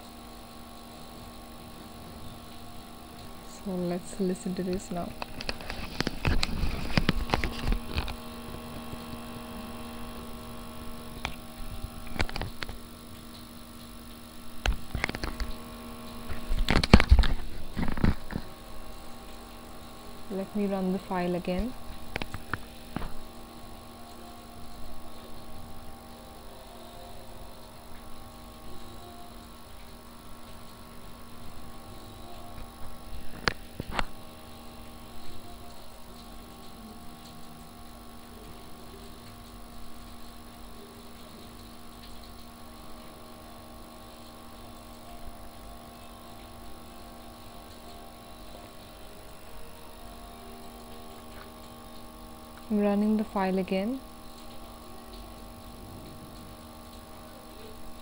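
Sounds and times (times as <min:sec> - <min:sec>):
steady electrical hum: 0:00.0 - 0:58.0.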